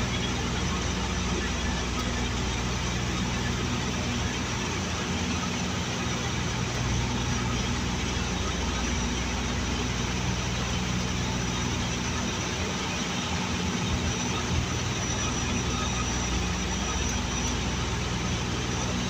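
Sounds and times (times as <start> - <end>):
turboprop engines droning: 0.0 - 19.0.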